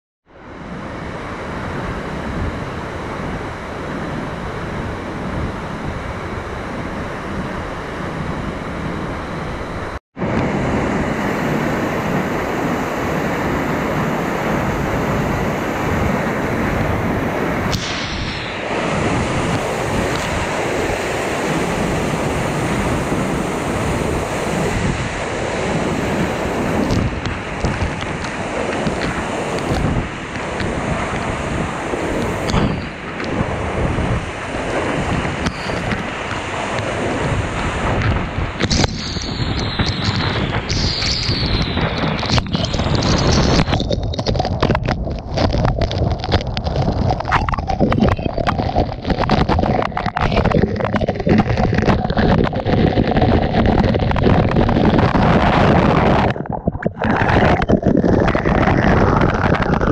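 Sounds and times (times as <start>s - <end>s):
waterfall rushing: 47.2s - 54.2s.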